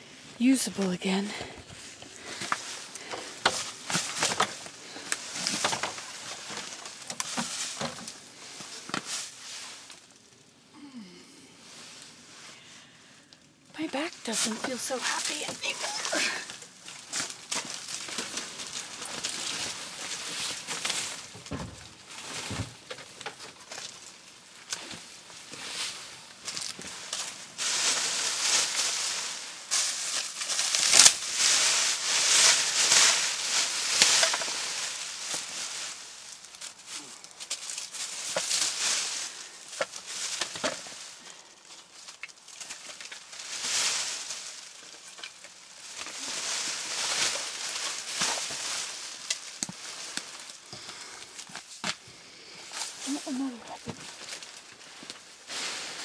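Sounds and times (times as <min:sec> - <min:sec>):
plastic sheeting rustling: 0:00.0 - 0:12.4, 0:13.8 - 0:51.8, 0:52.6 - 0:56.0.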